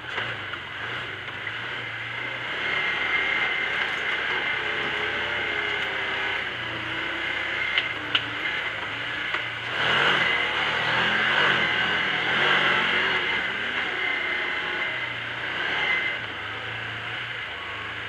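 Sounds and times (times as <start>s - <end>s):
off-road vehicle engine running: 0.0s - 18.0s.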